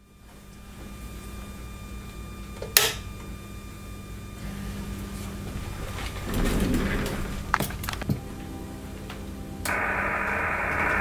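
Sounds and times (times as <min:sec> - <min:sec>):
steady electrical hum: 0:00.0 - 0:11.0
low rumble: 0:05.5 - 0:08.4, 0:09.7 - 0:11.0.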